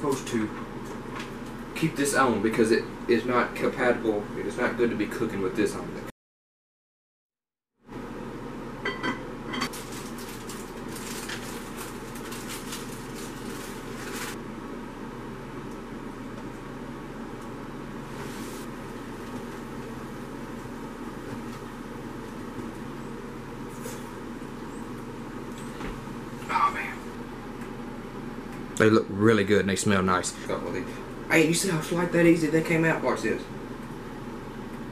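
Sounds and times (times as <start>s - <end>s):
low mechanical hum: 0.0s - 6.1s, 7.8s - 34.9s.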